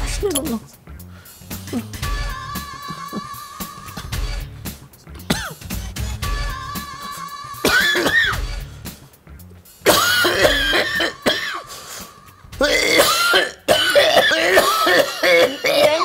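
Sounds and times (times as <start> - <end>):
strained wavering vocal sounds: 0.0 - 8.9, 10.3 - 13.1
person coughing: 5.2 - 5.9, 7.6 - 8.4, 9.9 - 11.7, 12.6 - 16.0.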